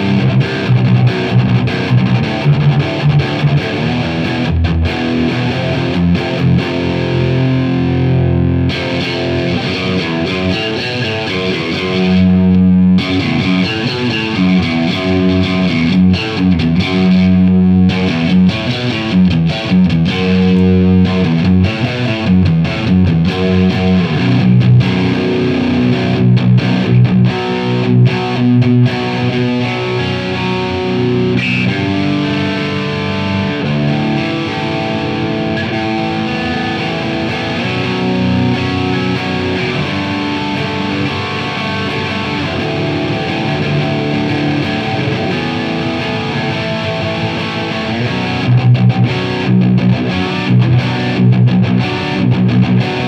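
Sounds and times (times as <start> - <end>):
distorted electric guitar riff: 0.0 - 53.0.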